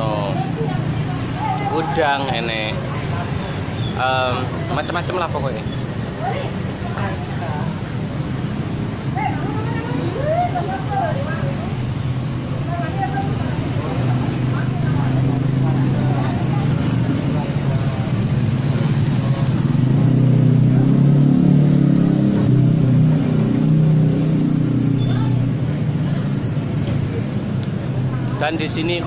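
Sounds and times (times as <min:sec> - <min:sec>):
vehicle engine drone: 0:00.0 - 0:29.0.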